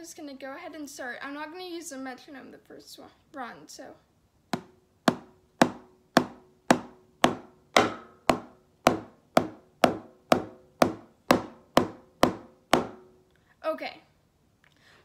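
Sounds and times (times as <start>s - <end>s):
drumsticks striking practice pad: 4.5s - 13.2s.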